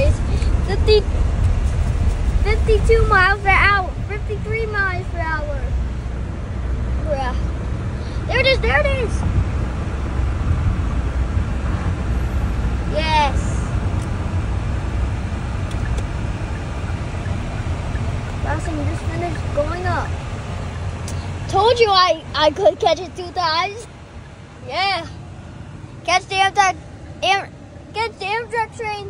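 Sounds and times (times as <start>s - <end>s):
road and engine rumble in car: 0.0s - 29.0s.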